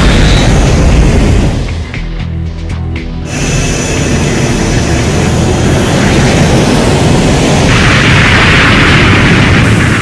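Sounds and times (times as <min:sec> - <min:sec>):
jet engine roaring: 0:00.0 - 0:01.9, 0:03.3 - 0:10.0.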